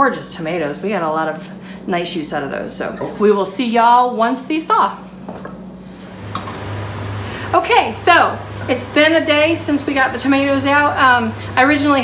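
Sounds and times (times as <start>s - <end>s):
deeper steady hum: 0.0s - 12.0s
steady low hum: 0.0s - 12.0s.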